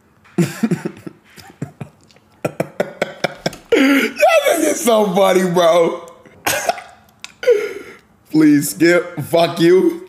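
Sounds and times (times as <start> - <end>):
man coughing: 6.4 - 7.8.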